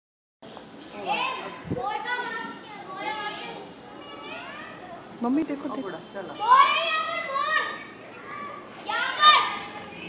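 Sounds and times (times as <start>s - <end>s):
excited children's voices: 0.9s - 5.2s, 6.3s - 10.0s.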